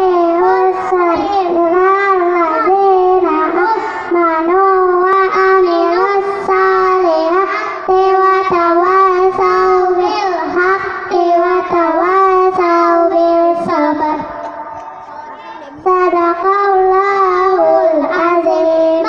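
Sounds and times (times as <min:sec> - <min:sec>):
children singing in unison: 0:00.0 - 0:19.0.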